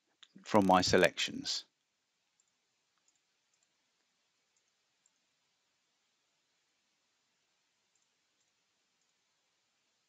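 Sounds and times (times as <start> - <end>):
faint computer mouse clicks: 2.4 - 3.7, 7.9 - 9.2.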